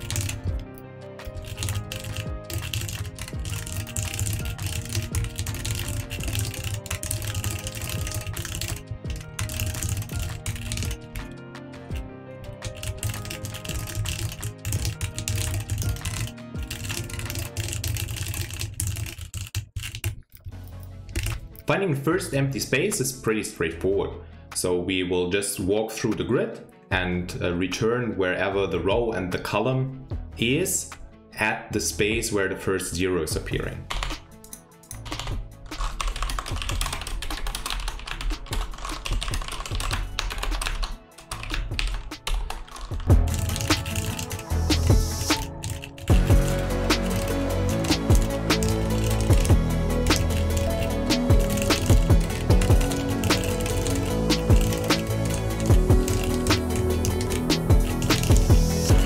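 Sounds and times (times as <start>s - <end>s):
computer keyboard typing: 0.0s - 21.6s, 33.8s - 59.0s
background music: 0.0s - 59.0s.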